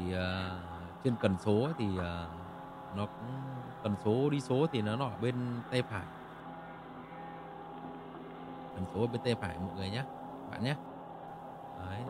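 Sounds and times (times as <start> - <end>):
man's voice: 0.0 - 2.4, 3.0 - 6.1, 8.8 - 10.8
steady hum of held tones: 0.0 - 12.0.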